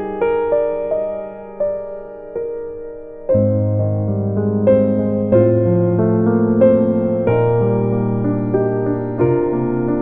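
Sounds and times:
solo piano playing: 0.0s - 10.0s.

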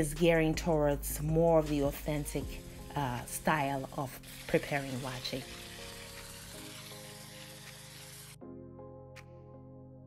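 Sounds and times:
background music with held notes: 0.0s - 10.0s
tap water running into colander: 2.0s - 8.4s.

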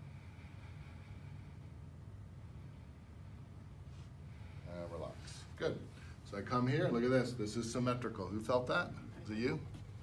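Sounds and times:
faint low hum with hiss: 0.0s - 10.0s.

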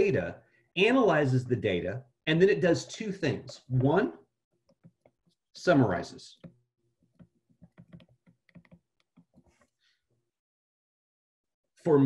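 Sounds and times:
faint tapping clicks: 6.4s - 9.8s.

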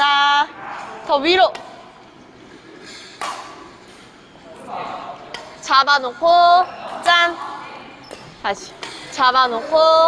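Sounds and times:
racket hitting shuttlecock: 3.2s - 4.0s, 8.0s - 9.1s.

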